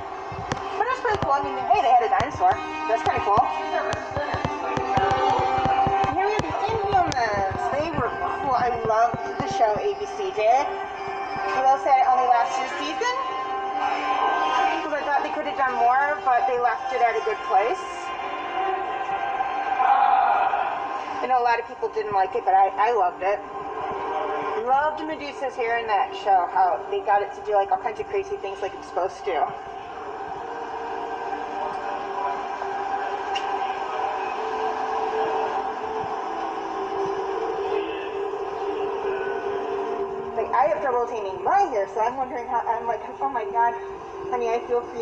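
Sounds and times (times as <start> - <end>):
drone of held tones: 28.2 - 41.6.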